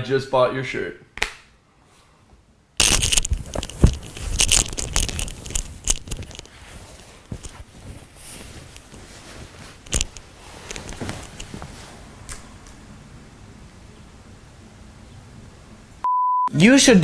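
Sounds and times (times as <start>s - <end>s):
shirt fabric rustling: 2.8s - 12.3s.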